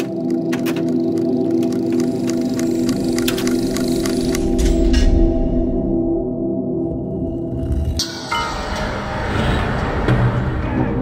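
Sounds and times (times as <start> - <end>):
bell-like drone: 7.8 - 11.0.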